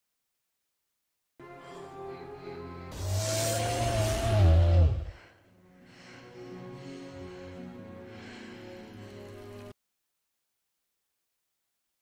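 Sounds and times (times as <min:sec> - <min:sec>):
creature roar: 0:03.0 - 0:05.2.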